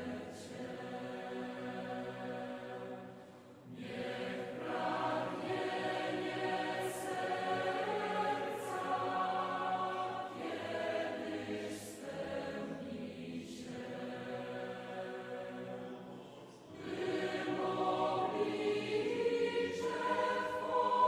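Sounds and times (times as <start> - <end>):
voices singing a slow chant: 0.0 - 21.0.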